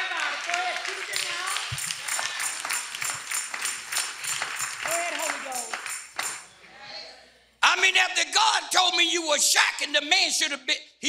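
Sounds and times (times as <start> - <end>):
hands clapping in rhythm: 0.0 - 6.5
person speaking: 0.6 - 3.2, 4.8 - 5.8, 6.6 - 10.8.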